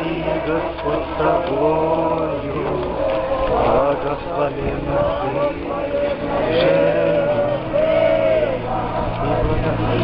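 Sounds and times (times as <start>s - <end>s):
crowd singing a chant: 0.0s - 10.0s.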